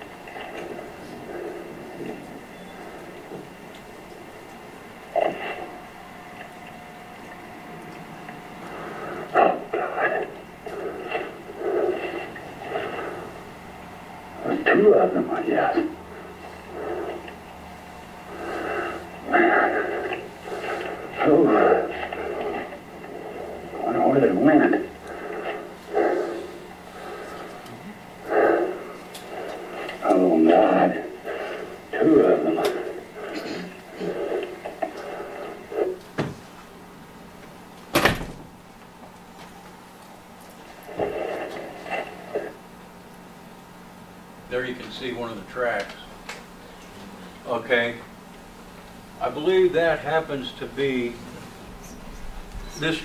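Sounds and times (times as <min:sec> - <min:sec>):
muffled voices: 0:00.0 - 0:13.5, 0:14.3 - 0:36.7, 0:40.6 - 0:53.0
faint electrical hum: 0:00.0 - 0:53.0
murmuring voices: 0:18.3 - 0:35.9, 0:46.6 - 0:47.6.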